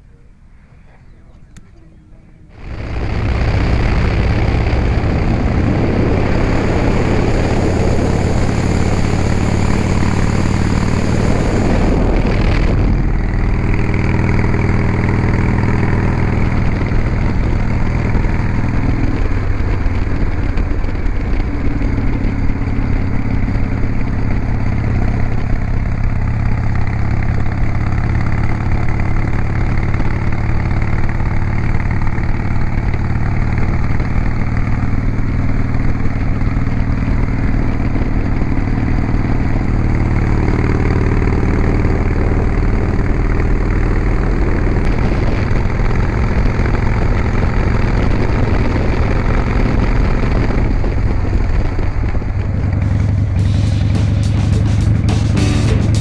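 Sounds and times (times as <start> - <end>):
motorcycle engine running: 1.5 - 56.0
wind rushing over microphone: 2.5 - 53.4.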